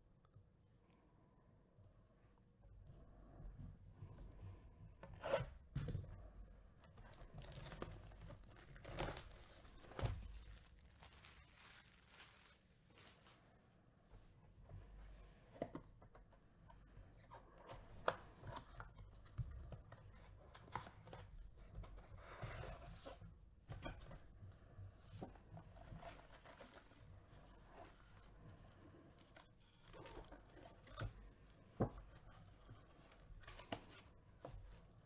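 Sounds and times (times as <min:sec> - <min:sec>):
foil card packs rustling: 0:07.1 - 0:13.4.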